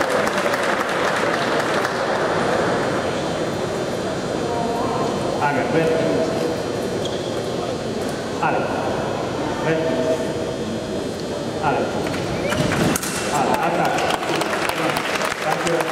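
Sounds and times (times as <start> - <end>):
audience applauding and cheering: 0.0 - 2.0, 13.4 - 15.9
murmur of a large hall: 0.0 - 15.9.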